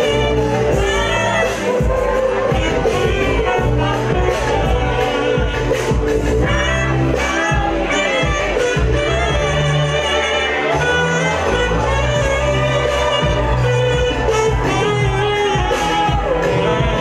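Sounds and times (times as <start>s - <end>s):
club music with heavy bass beat: 0.0s - 17.0s
saxophone melody: 0.0s - 17.0s.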